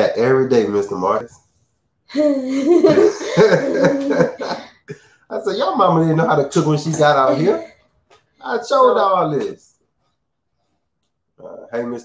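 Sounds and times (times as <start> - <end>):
people laughing: 2.5 - 4.8.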